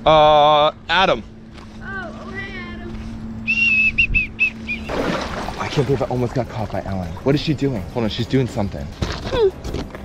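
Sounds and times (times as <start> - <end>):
shrill whistle: 3.4 - 4.9.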